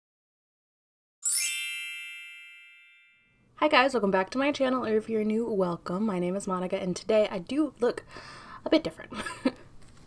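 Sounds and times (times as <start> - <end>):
bright bell-like chime: 1.2 - 3.4.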